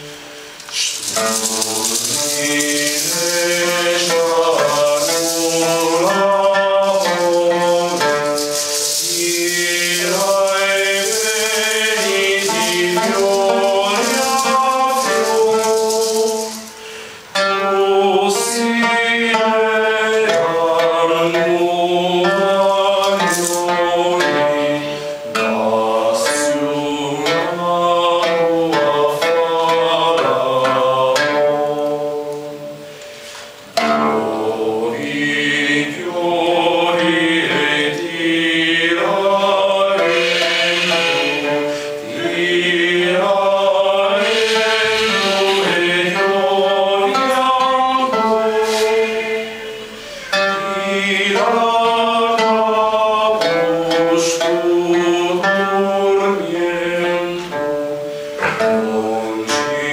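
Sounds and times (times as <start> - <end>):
mixed choir singing a chant: 0.0 - 16.8, 17.4 - 32.9, 33.8 - 59.9
light instrumental accompaniment: 0.0 - 18.6
shaken rattle percussion: 0.0 - 59.9
sung droning notes: 0.0 - 59.9.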